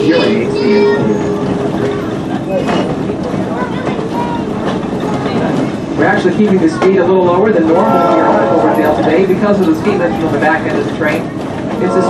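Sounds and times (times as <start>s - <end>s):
train wheels clattering on rail: 0.0s - 12.0s.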